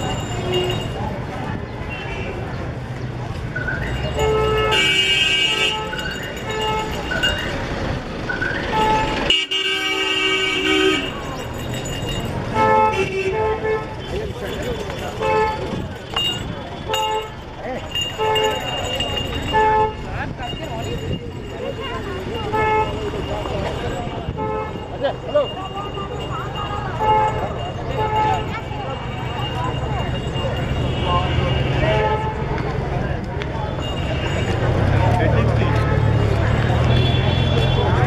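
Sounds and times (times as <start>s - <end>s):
passers-by voices: 0.0s - 38.0s
street traffic hum: 0.0s - 38.0s
vehicle horns honking: 0.1s - 1.0s, 3.9s - 7.4s, 8.6s - 11.3s, 12.5s - 17.4s, 18.0s - 20.1s, 22.3s - 29.8s, 30.6s - 32.6s, 33.6s - 35.0s, 35.6s - 38.0s.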